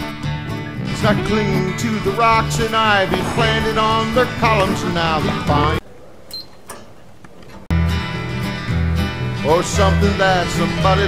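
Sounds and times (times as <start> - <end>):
country guitar music: 0.0 - 5.8, 7.7 - 11.0.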